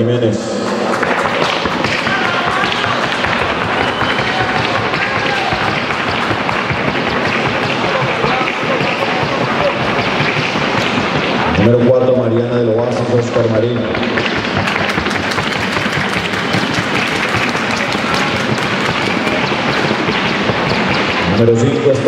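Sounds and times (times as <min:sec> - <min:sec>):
hoofbeats on a hard track: 0:00.7 - 0:22.0.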